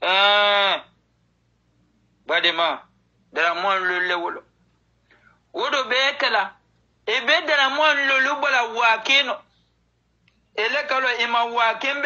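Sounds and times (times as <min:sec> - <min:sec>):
man holding a vowel: 0:00.0 - 0:01.0.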